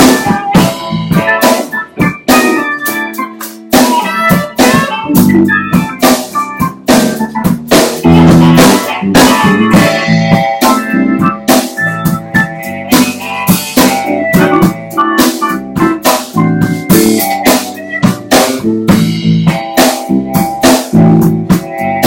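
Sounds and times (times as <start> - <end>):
drum kit: 0.0 - 22.0
electric bass: 0.0 - 22.0
electric guitar: 0.0 - 22.0
organ-toned keyboard: 0.0 - 22.0.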